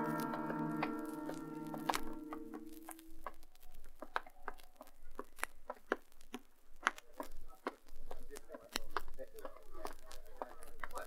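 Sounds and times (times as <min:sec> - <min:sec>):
held musical chord: 0:00.0 - 0:02.7.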